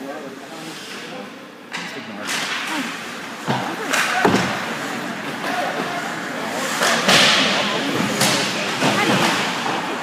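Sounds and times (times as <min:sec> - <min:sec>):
voices in rink: 0:00.0 - 0:10.0
hockey sticks clacking: 0:01.7 - 0:10.0.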